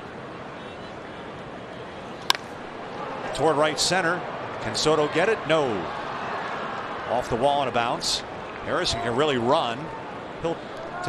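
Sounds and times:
bat hitting ball: 2.2s - 2.7s.

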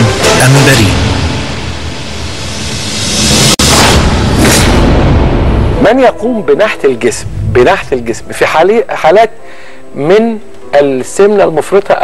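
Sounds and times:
dramatic music: 0.0s - 9.1s
booming sound-effect hits: 1.0s - 6.1s.

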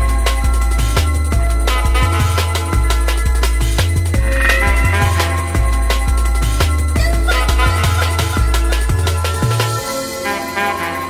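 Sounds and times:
drum and bass music: 0.0s - 11.0s
short warbling synth: 4.2s - 6.2s.

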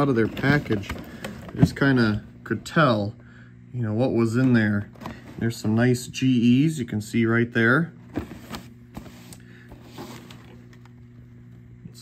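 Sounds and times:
cardboard rustling: 0.0s - 2.2s, 8.0s - 10.8s
steady low hum: 0.0s - 12.0s.

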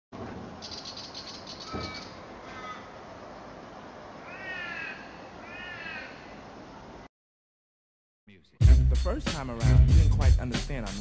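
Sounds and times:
birds calling: 0.6s - 3.1s, 4.1s - 6.7s.

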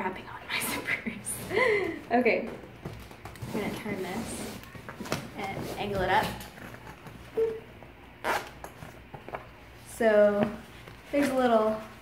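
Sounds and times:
zipper rasp: 8.2s - 8.6s.

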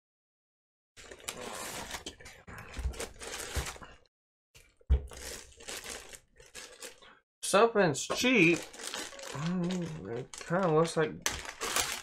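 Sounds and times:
foam and plastic wrap rustling: 1.0s - 4.0s, 5.0s - 7.0s, 8.1s - 12.0s.

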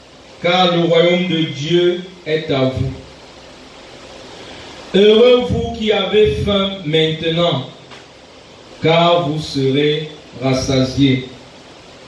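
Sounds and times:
room noise hiss: 0.0s - 12.0s
man reading aloud: 0.4s - 3.1s, 4.9s - 7.8s, 8.8s - 11.4s.

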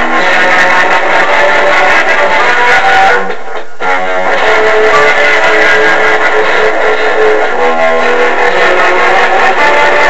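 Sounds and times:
electric guitar melody: 0.0s - 10.0s.

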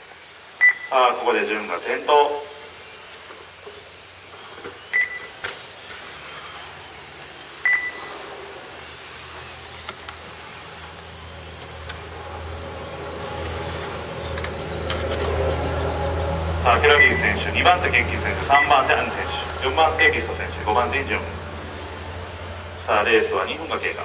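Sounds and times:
high-pitched motor whine: 0.0s - 24.0s
short beeps: 0.6s - 1.0s, 4.9s - 5.3s, 7.6s - 8.2s, 13.2s - 21.0s
low hum: 0.6s - 24.0s.

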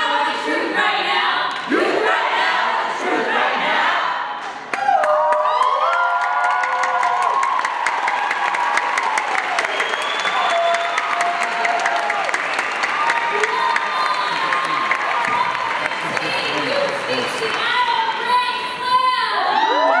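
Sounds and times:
audience applause and cheering: 4.4s - 20.0s
whoops and shouts: 4.7s - 12.3s, 12.9s - 16.0s, 18.8s - 20.0s.

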